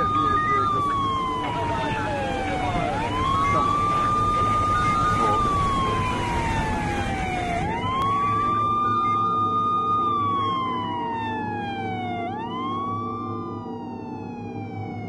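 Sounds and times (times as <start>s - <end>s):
police siren wailing: 0.0s - 15.0s
steady low rumble: 0.0s - 15.0s.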